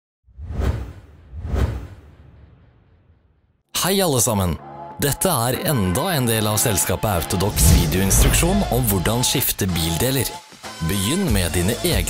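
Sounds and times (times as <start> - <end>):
whoosh with deep rumble: 7.4 - 9.3.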